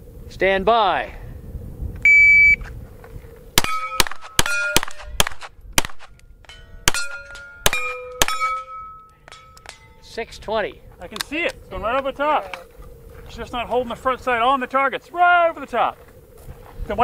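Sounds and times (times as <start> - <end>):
shot timer beep: 2.1 - 2.6
steel target plates ringing: 3.6 - 5.3, 6.4 - 10.2
pistol shots: 3.6 - 6.2, 6.9 - 8.8
man talking: 10.0 - 16.0.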